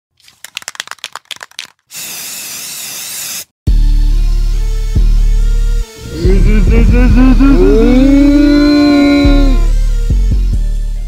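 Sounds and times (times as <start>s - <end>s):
deep bass note: 6.0s - 9.9s.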